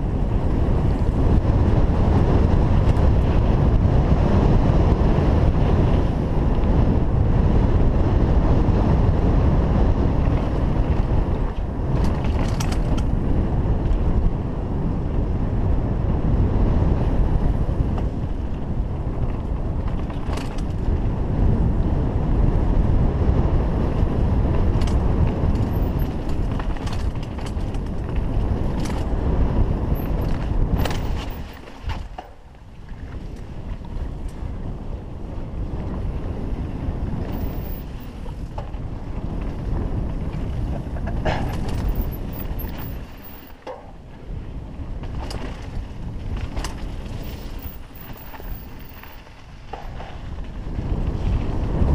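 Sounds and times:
wind on microphone: 0:00.0 - 0:51.9
tyres rumbling over dirt: 0:00.1 - 0:51.9
bike clicks and rattles: 0:00.8 - 0:03.9, 0:08.3 - 0:15.4, 0:16.9 - 0:21.9, 0:23.0 - 0:51.9.

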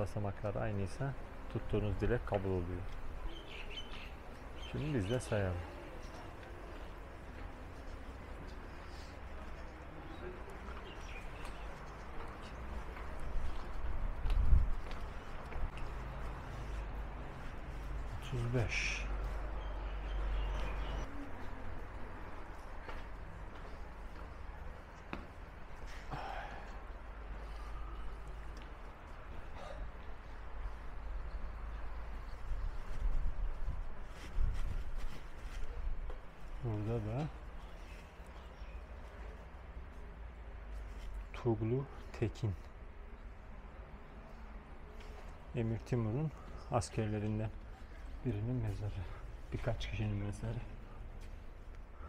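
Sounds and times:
footsteps on brick stairs: 0:10.4 - 0:18.3, 0:19.2 - 0:30.4
man speaking: 0:18.1 - 0:19.2.

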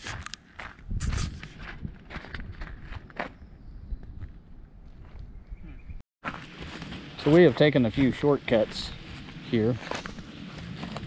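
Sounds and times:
footsteps on gritty pavement: 0:00.0 - 0:05.3, 0:06.2 - 0:11.0.

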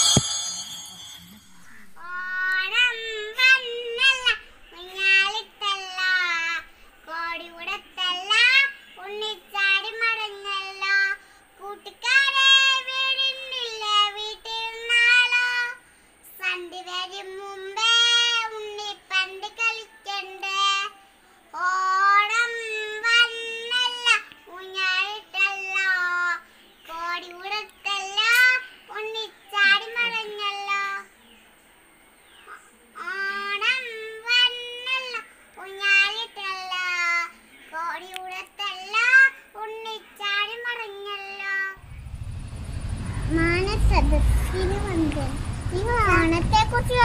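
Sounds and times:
girl singing unaccompanied: 0:01.5 - 0:31.5, 0:32.4 - 0:41.9, 0:42.8 - 0:47.0.

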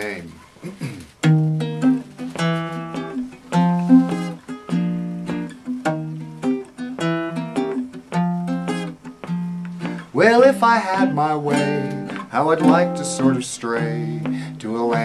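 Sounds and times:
ukulele strumming chords: 0:01.2 - 0:15.0.

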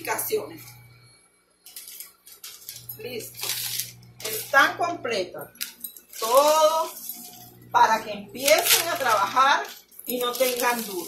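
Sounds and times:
paper sheets rustling: 0:01.7 - 0:04.5, 0:06.1 - 0:07.3, 0:08.4 - 0:11.0.

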